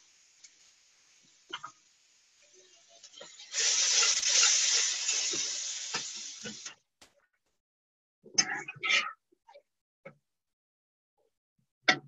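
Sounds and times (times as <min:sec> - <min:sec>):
food sizzling in hot oil: 0:00.0 - 0:06.8.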